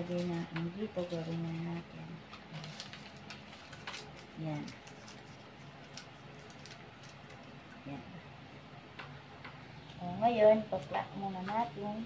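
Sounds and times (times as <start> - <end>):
foil cups crinkling: 0.0 - 7.8
sharp foil crackle: 2.3 - 7.6.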